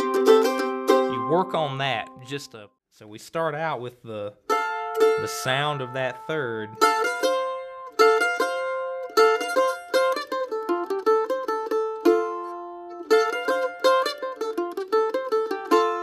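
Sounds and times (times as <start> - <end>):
mandolin picked with a plectrum: 0.0 - 2.6, 4.1 - 16.0.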